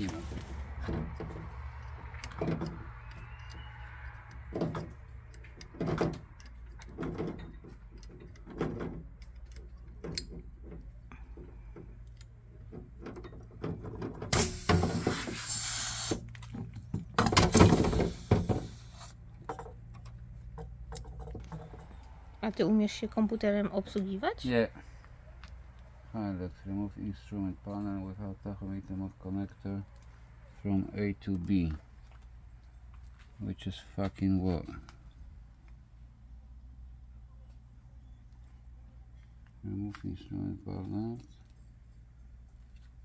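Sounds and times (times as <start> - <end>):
metal fittings clicking and knocking: 0.8 - 14.2
compressed air hissing: 14.3 - 16.3, 17.5 - 19.1.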